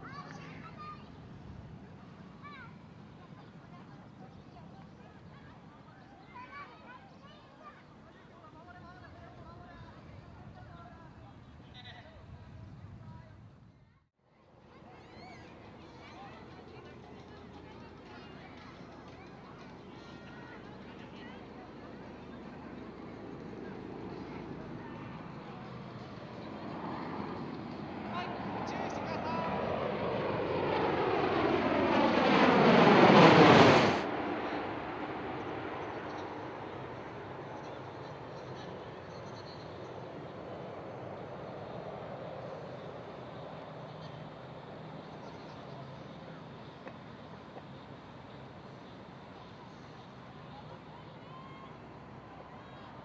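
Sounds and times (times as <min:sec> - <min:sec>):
distant aircraft rotor rumble: 0:00.0 - 0:53.0.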